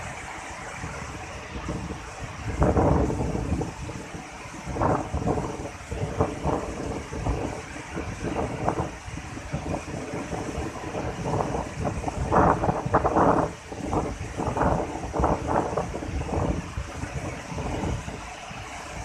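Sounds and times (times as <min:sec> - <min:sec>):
waterfall rushing over rocks: 0:00.0 - 0:19.0
wind buffeting microphone: 0:00.0 - 0:19.0.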